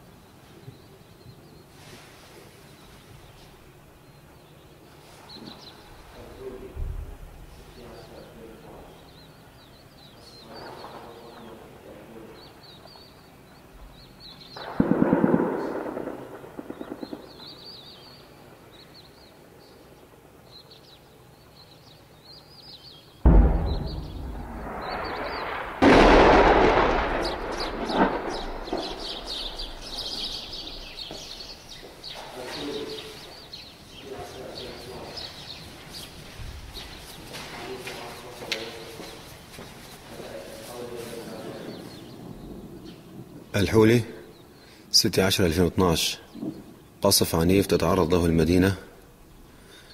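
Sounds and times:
birds chirping: 0:00.0 - 0:49.9
heavy shelling booms: 0:10.4 - 0:18.6, 0:23.2 - 0:35.5
burst of gunfire: 0:14.6 - 0:17.7, 0:23.3 - 0:31.4.

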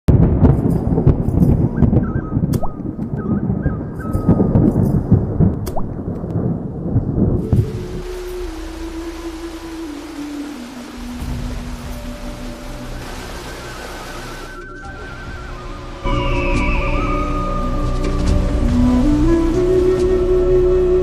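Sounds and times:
heavy rain: 0:00.1 - 0:21.0
rumbling thunder: 0:00.1 - 0:21.0
sustained low tone: 0:07.3 - 0:21.0.

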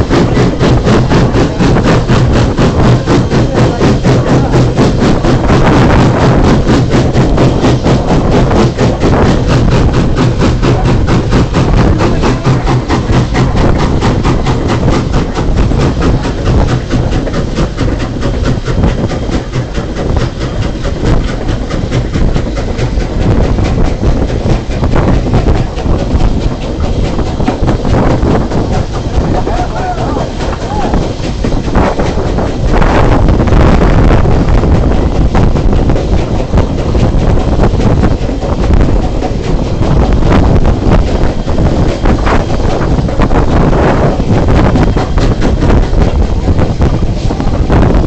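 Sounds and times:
train clattering: 0:00.0 - 0:48.0.

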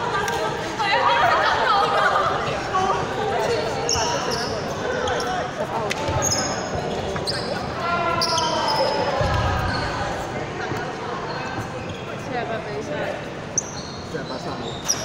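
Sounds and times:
players' voices echoing: 0:00.0 - 0:15.0
sneakers squeaking on hardwood: 0:06.0 - 0:10.1.

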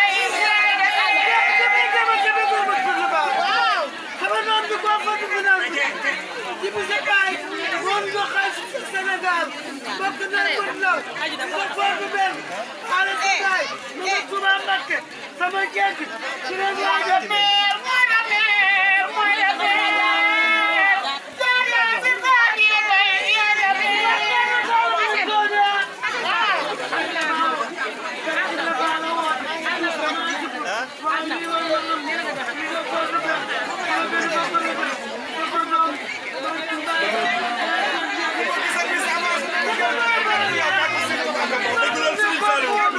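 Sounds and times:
women calling through megaphones: 0:00.0 - 0:06.0, 0:16.4 - 0:42.9
crowd chatter: 0:00.0 - 0:42.9.

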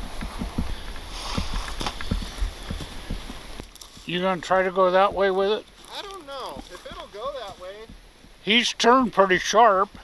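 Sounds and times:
footsteps on sandy ground: 0:00.0 - 0:08.6.

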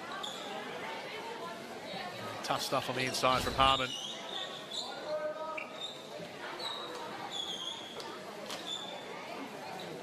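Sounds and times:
faint scattered voices: 0:00.0 - 0:10.0.

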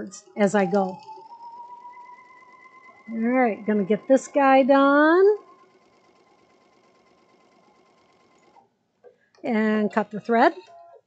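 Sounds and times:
electric sewing machine running: 0:00.0 - 0:08.7.

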